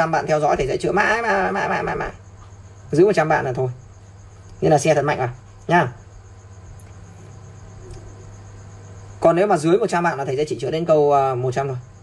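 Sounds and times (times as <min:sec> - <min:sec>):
insect trilling: 0:00.0 - 0:12.0
low steady hum: 0:00.0 - 0:12.0.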